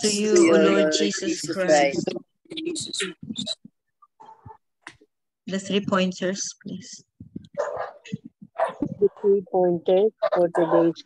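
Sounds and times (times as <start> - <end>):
dog barking: 4.2 - 4.6, 7.6 - 9.2, 10.2 - 11.0.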